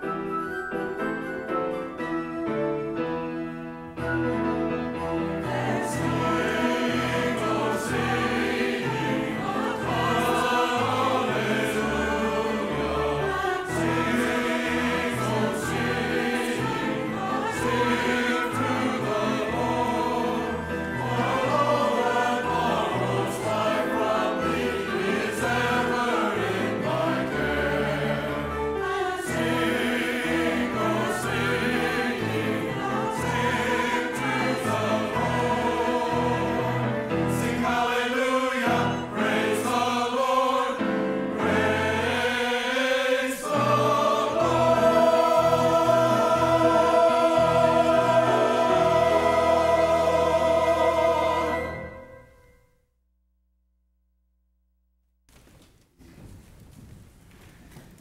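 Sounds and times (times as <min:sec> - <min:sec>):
piano accompaniment: 0:00.0 - 0:52.5
mixed choir singing: 0:04.6 - 0:52.1.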